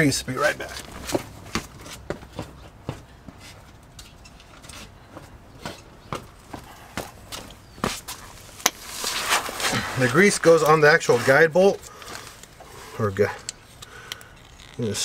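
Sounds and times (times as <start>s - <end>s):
footsteps on stone paving: 0.7s - 10.0s.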